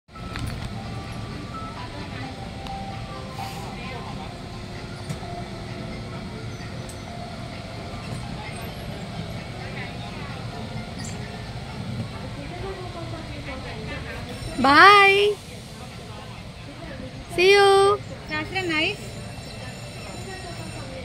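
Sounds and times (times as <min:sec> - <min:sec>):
faint background music: 0:00.1 - 0:21.0.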